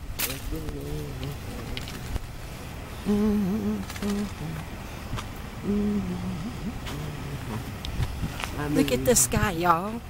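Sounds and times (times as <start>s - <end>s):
person humming: 0.2s - 2.1s, 3.0s - 4.7s, 5.6s - 7.8s.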